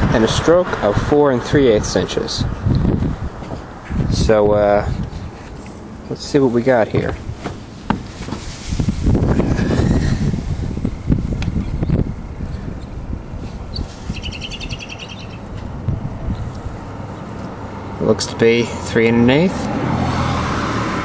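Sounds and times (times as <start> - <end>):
rumbling handling noise: 2.4 - 17.6
bird trilling chirps: 13.7 - 15.5.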